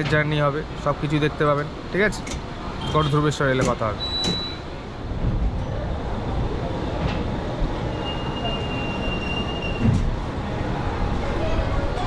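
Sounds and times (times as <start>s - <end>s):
train rolling rumble: 3.5s - 12.0s.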